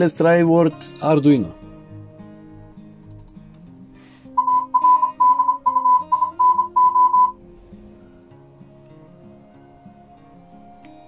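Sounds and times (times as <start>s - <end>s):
soft background music: 0.0s - 11.0s
morse code beeps: 4.4s - 7.4s.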